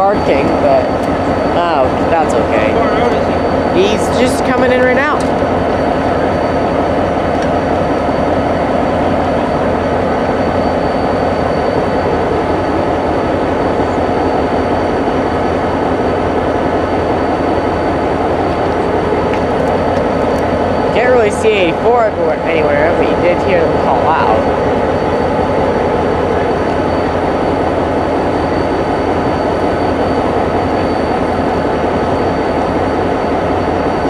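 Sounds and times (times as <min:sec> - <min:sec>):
diesel locomotive idling: 0:00.0 - 0:34.0.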